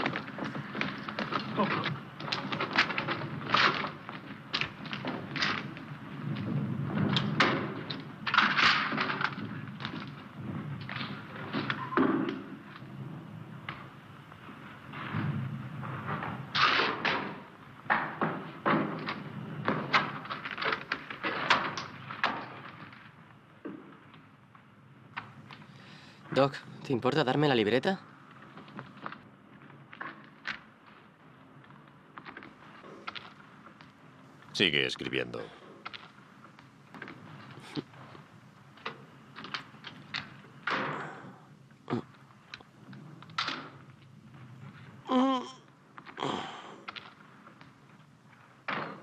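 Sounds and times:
knocks thuds and clatters: 0:00.0 - 0:12.8, 0:14.8 - 0:23.1, 0:48.4 - 0:49.0.

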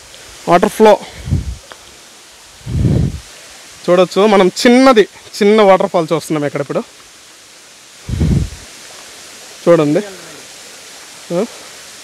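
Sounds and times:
waterfall rushing: 0:00.0 - 0:12.0
low microphone rumble: 0:01.1 - 0:01.7, 0:02.6 - 0:03.3, 0:08.0 - 0:08.7.

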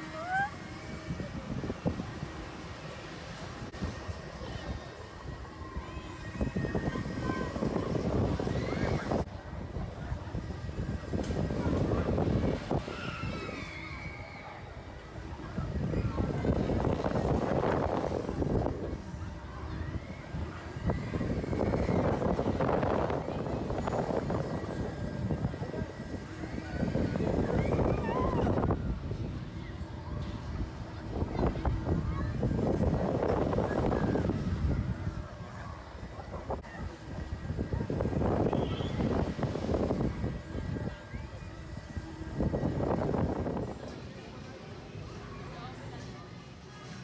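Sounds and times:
wind rushing over microphone: 0:00.0 - 0:45.8
faint voices: 0:00.0 - 0:47.0.

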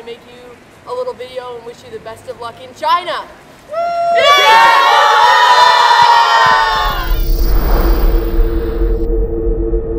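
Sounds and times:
women cheering and whooping: 0:03.7 - 0:07.2
rushing whoosh: 0:06.4 - 0:09.9.

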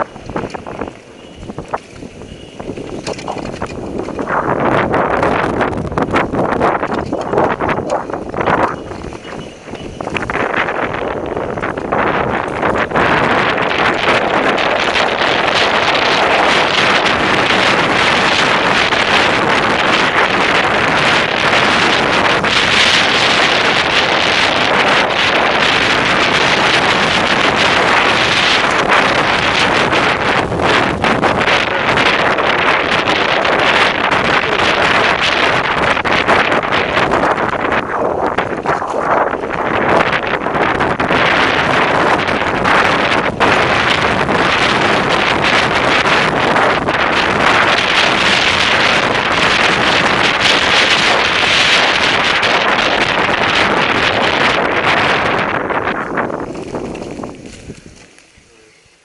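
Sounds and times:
bike knocks and rattles: 0:00.0 - 0:54.9
wind rushing on microphone: 0:00.0 - 0:59.0.

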